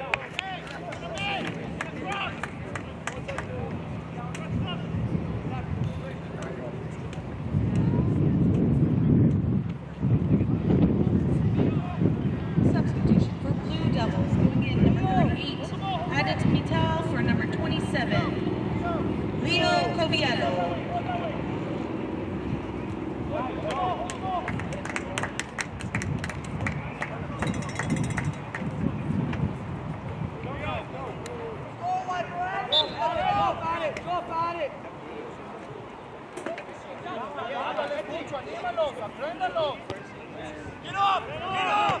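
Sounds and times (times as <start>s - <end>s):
shouts and chatter: 0.0s - 3.8s, 13.6s - 22.4s, 30.5s - 35.4s, 36.6s - 42.0s.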